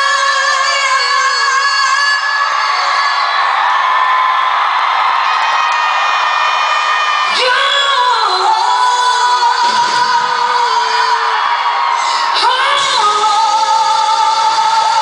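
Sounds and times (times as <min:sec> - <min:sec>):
crowd whooping: 0:00.0 - 0:15.0.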